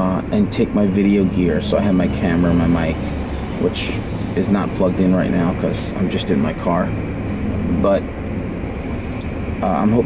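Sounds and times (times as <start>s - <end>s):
car engine rumble from cabin: 0.0s - 10.0s.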